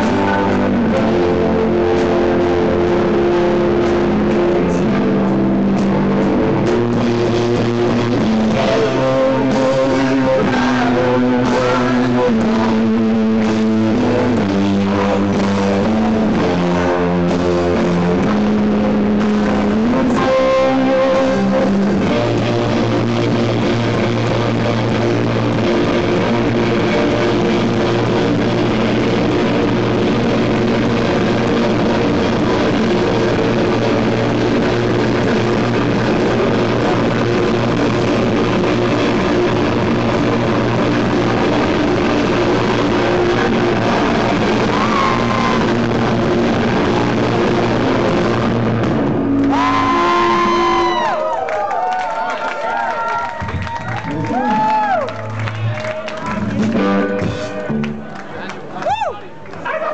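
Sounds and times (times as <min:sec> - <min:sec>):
live rock band playing loud: 0:00.0 - 0:51.3, 0:53.4 - 0:58.2.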